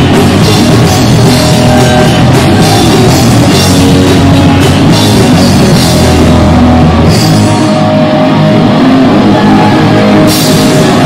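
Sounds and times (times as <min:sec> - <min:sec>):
punk rock band playing: 0:00.0 - 0:11.0.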